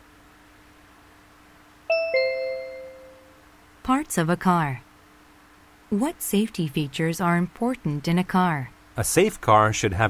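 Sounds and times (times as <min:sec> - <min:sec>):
faint steady hum: 0:00.0 - 0:10.0
two-note ding-dong chime: 0:01.9 - 0:03.4.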